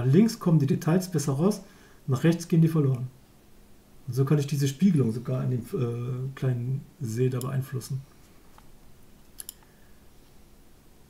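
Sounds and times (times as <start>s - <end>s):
computer mouse clicks: 8.6s - 9.7s.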